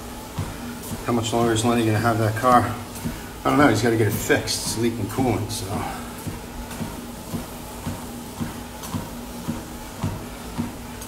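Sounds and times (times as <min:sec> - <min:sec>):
exercise machine humming: 0:00.0 - 0:11.0.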